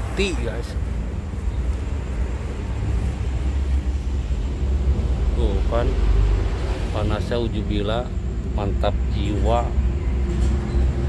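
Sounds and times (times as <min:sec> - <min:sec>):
truck engines rumbling: 0:00.0 - 0:11.0.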